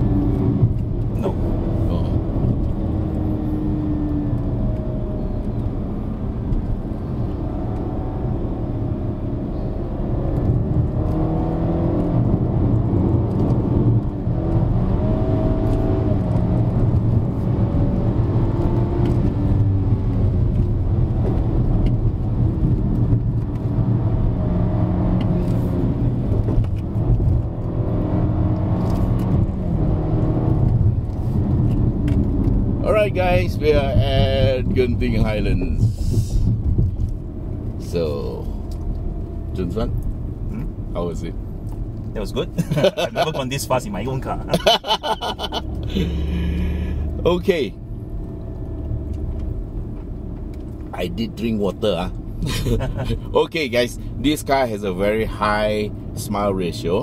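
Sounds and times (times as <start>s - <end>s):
car engine accelerating: 0.0s - 57.0s
road rumble: 0.0s - 57.0s.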